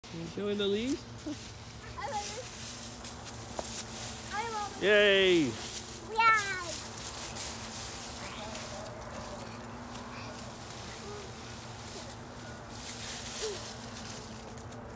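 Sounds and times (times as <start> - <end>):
rustling of dry leaves: 0.0 - 14.9.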